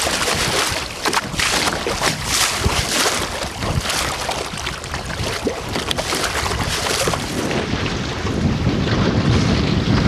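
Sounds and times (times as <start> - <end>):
water slapping wooden hull: 0.0 - 10.0
wind buffeting microphone: 0.0 - 10.0.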